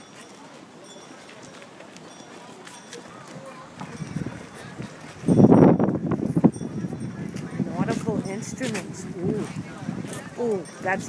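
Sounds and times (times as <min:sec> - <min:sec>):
wind buffeting microphone: 0:03.1 - 0:11.0.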